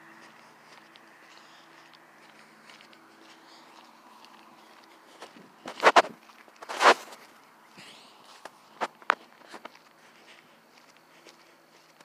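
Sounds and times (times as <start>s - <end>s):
footsteps on paved road: 0.0s - 12.0s.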